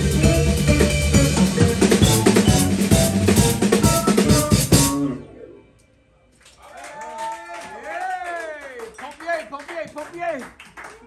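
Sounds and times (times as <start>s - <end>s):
live band playing: 0.0s - 5.5s
audience whooping and shouting: 6.6s - 8.8s.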